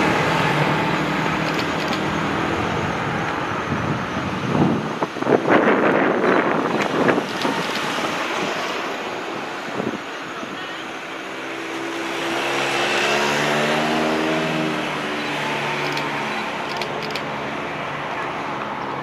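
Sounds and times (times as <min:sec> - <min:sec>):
vehicles passing close by: 0:00.0 - 0:19.0.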